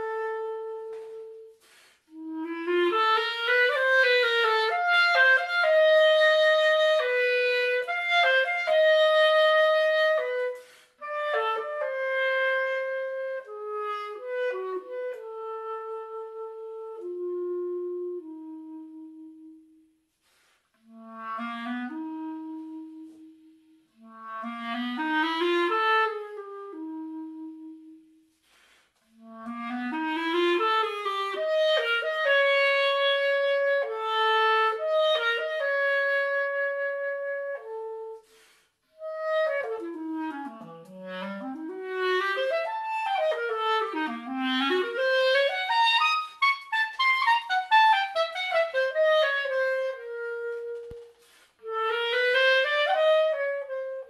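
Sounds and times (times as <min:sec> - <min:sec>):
solo clarinet: 0:00.0 - 0:54.0.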